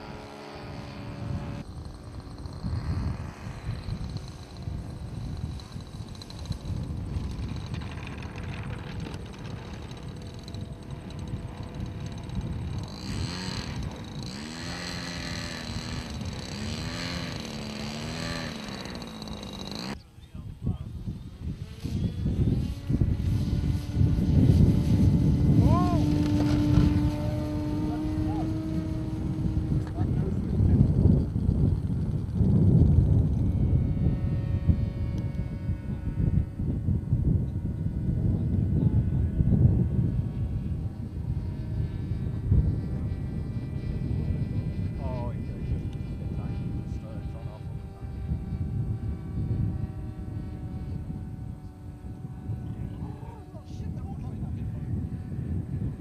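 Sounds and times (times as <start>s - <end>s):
model aircraft engines: 0.0s - 56.0s
wind noise on microphone: 0.0s - 56.0s.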